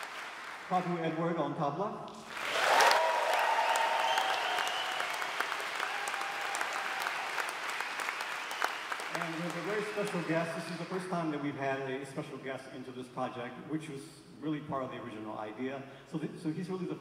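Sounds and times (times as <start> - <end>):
audience applause: 0.0 - 1.0, 2.3 - 11.0.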